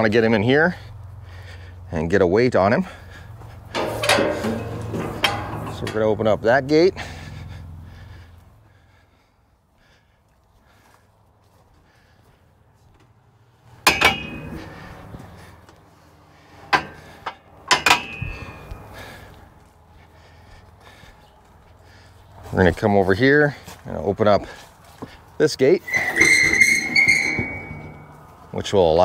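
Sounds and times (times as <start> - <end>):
metal gate latch clanking: 3.7 - 6.4, 13.8 - 14.9, 16.6 - 18.8, 25.9 - 28.2.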